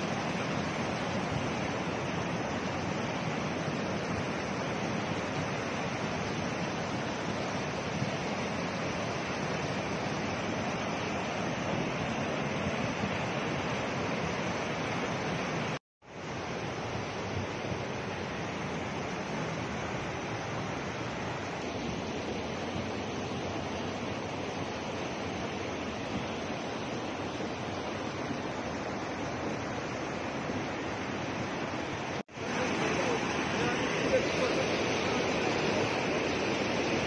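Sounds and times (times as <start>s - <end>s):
flood river rushing: 0.0s - 37.0s.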